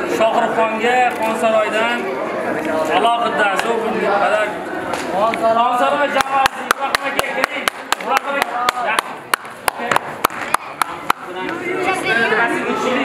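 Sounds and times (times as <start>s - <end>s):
voices talking: 0.0s - 13.0s
hands clapping: 6.1s - 11.6s.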